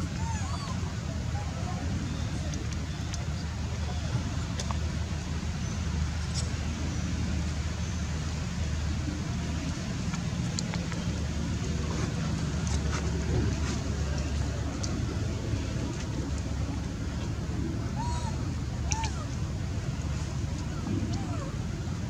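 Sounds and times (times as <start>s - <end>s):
steady low rumble: 0.0s - 22.0s.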